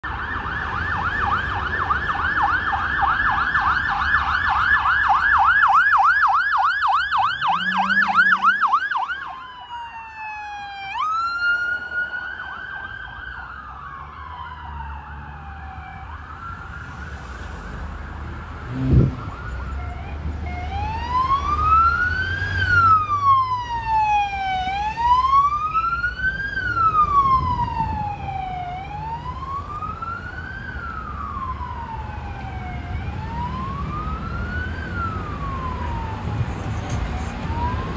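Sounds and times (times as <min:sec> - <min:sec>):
police siren yelp and wail: 0:00.0 - 0:37.9
traffic rumble: 0:00.0 - 0:37.9.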